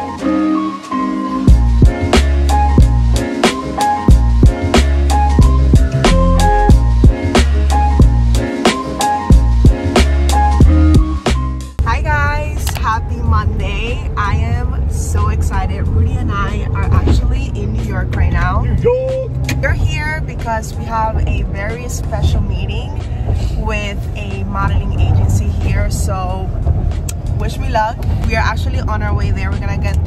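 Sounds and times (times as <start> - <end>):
woman talking: 11.8 - 18.9, 19.5 - 26.5, 27.3 - 30.0
car cabin rumble: 11.8 - 30.0.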